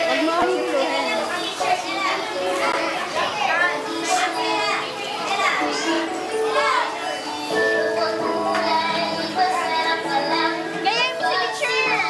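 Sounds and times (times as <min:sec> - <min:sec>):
children chattering and calling out: 0:00.0 - 0:12.0
music: 0:00.0 - 0:12.0.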